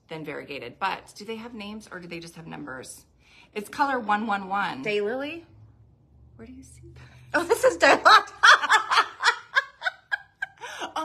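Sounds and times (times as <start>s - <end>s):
women laughing: 7.4s - 11.0s.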